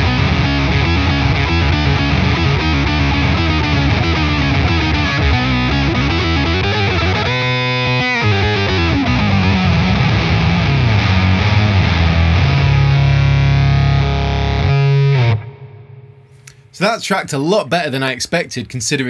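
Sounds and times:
electric guitar fuzz riff: 0.0s - 16.8s.

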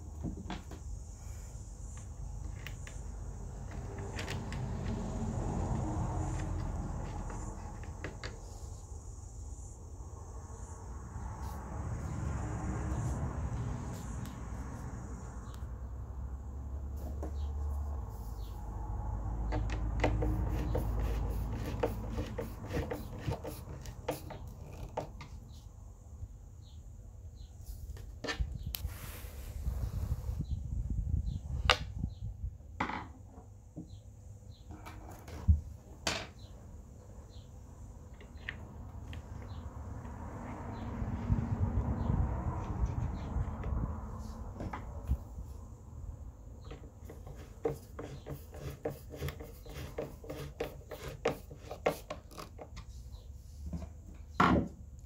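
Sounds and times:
rubbing: 47.1s - 52.6s.

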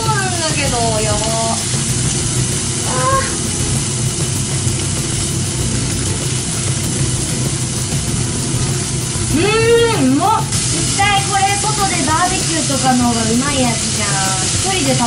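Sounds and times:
beef sizzling in a frying pan: 0.0s - 15.0s
person exclaiming: 2.8s - 3.4s, 9.3s - 10.5s
person humming: 2.8s - 3.4s.

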